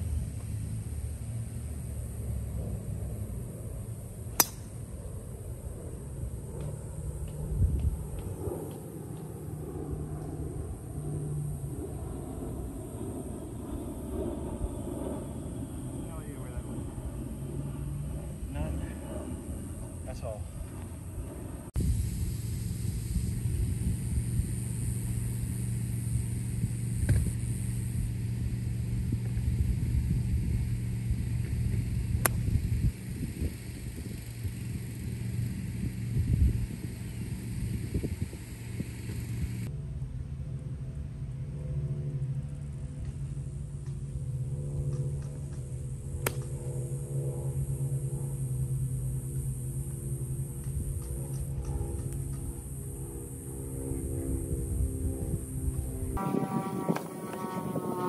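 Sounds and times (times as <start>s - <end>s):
outdoor rumble: 0.0s - 58.0s
steady low hum: 0.0s - 58.0s.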